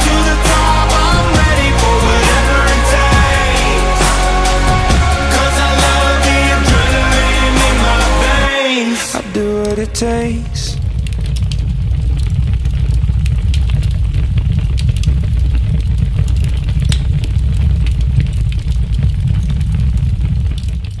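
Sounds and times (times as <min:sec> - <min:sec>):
steady deep rumble: 0:00.0 - 0:08.5, 0:09.2 - 0:21.0
crackles and clicks: 0:09.0 - 0:21.0.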